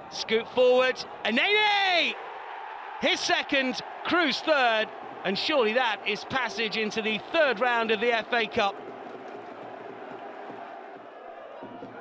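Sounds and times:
stadium crowd cheering and chatter: 0.0s - 12.0s.

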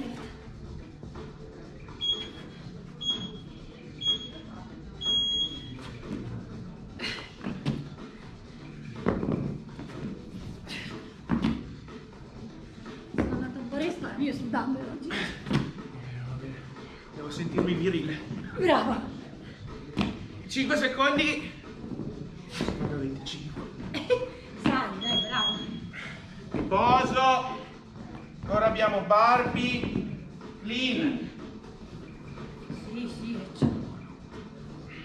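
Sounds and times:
electronic timer beeps: 2.0s - 2.4s, 3.0s - 4.4s, 5.0s - 5.8s, 25.0s - 25.8s
dumbbells thumping on rubber floor: 13.1s - 13.5s.

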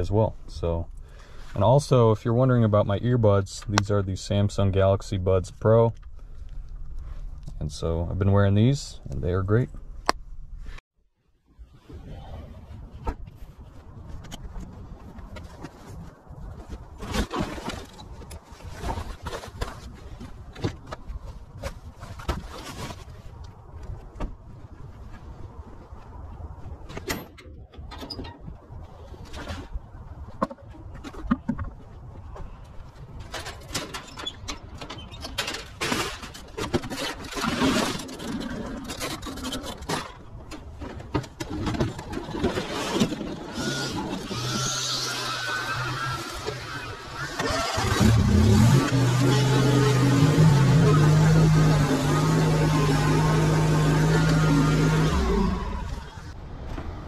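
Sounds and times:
motor running: 43.5s - 56.2s.

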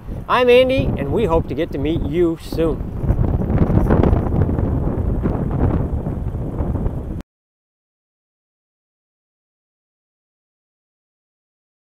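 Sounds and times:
wind buffeting microphone: 0.0s - 7.2s.

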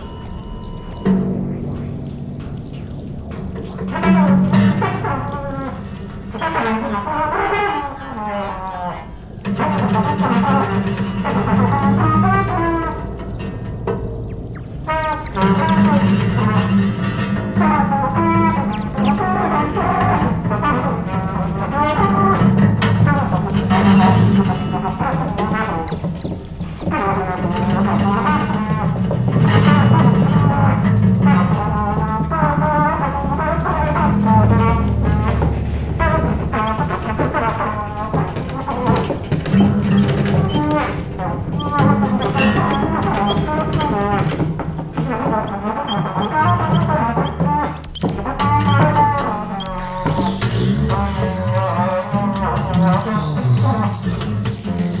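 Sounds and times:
trumpet improvising: 0.0s - 1.1s, 3.8s - 13.2s, 14.3s - 16.7s, 17.6s - 22.4s, 23.1s - 55.0s
faint high electronic tones: 0.0s - 1.2s, 38.0s - 50.4s.

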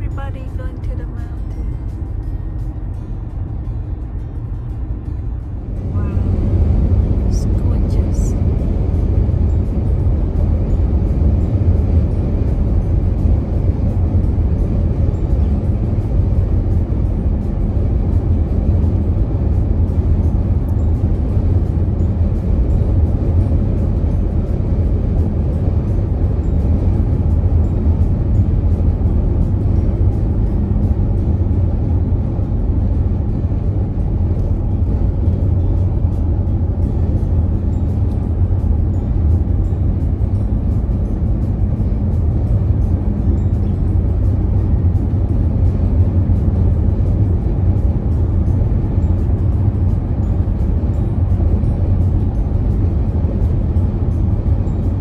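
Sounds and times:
car road and tyre rumble: 0.0s - 55.0s.

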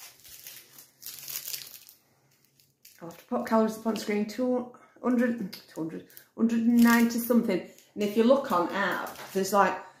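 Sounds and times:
plastic wrapper crinkling: 0.0s - 3.6s, 5.5s - 9.6s.

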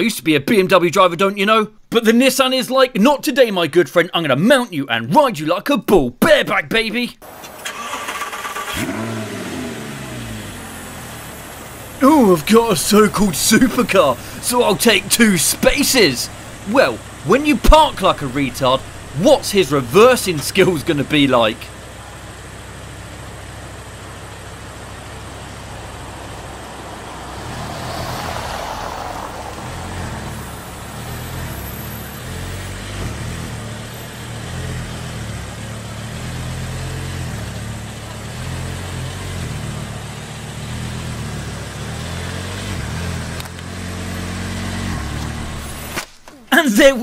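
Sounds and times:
car engine running at low speed: 7.2s - 46.0s.

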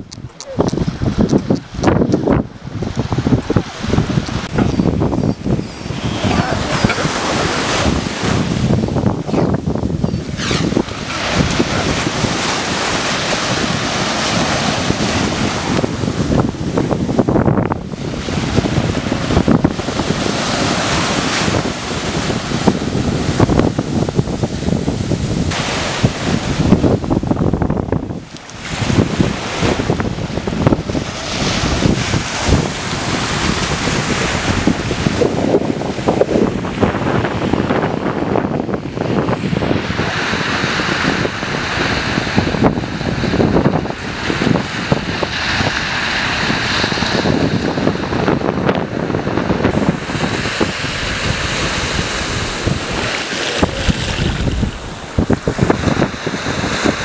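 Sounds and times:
waves breaking on a beach: 0.0s - 57.0s
wind buffeting the microphone: 0.0s - 57.0s.

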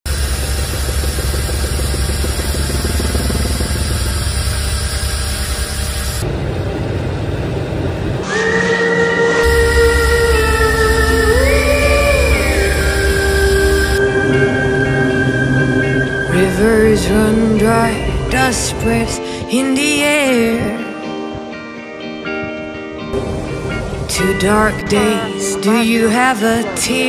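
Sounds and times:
turboprop engines droning: 0.1s - 20.6s, 23.2s - 26.0s
music with sliding held tones: 9.2s - 27.0s.

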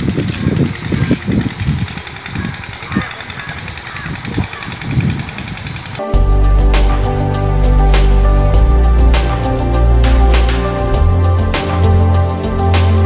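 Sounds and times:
rustling: 0.0s - 4.6s
low thumps: 6.0s - 13.0s
soft instrumental music: 6.0s - 13.0s.

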